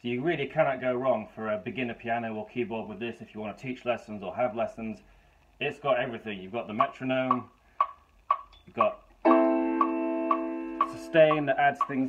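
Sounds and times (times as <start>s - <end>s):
metronome clicks: 6.7s - 12.0s
electronic keyboard chord: 9.2s - 11.5s.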